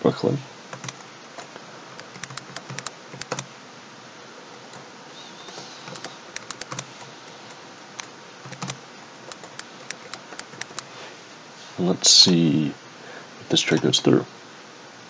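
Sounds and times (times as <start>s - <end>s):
computer keyboard typing: 0.8s - 1.0s, 2.0s - 3.4s, 6.0s - 6.8s, 8.5s - 10.8s.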